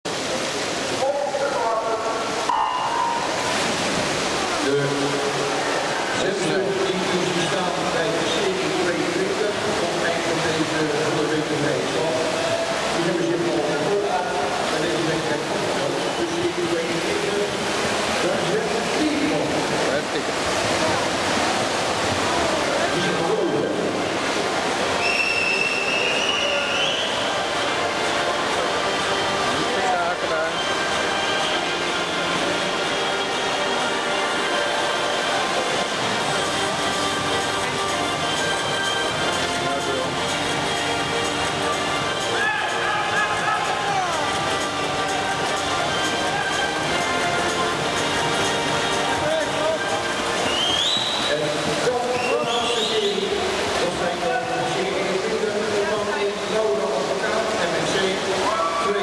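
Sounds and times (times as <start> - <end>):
crowd noise: 0.0 - 59.0
water wash: 0.0 - 59.0
swimmers splashing: 0.1 - 59.0
high steady whistle: 25.0 - 27.3, 50.5 - 51.4.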